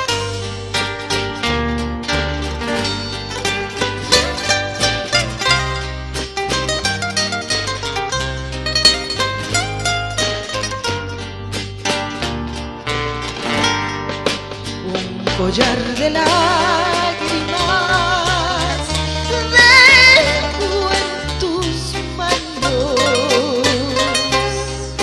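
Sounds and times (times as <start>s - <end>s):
plucked-string melody: 0.0s - 25.0s
steady bass notes: 0.0s - 25.0s.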